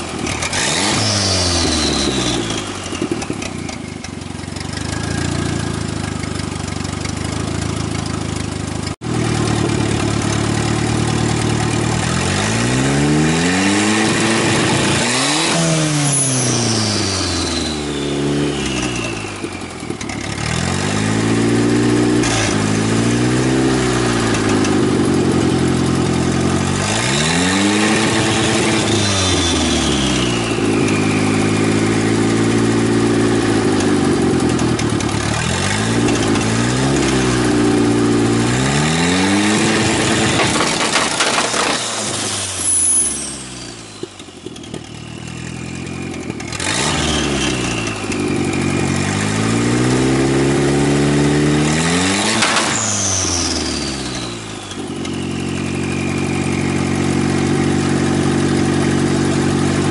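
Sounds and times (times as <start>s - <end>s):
car engine idling and revving: 0.0s - 59.9s
turbo whistle: 15.9s - 19.6s, 52.4s - 57.0s.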